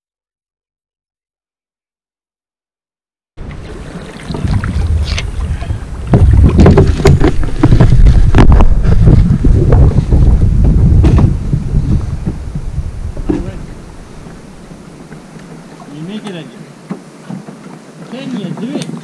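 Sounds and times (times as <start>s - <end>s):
wind buffeting microphone: 3.4s - 16.4s
paddle knocks: 3.4s - 19.0s.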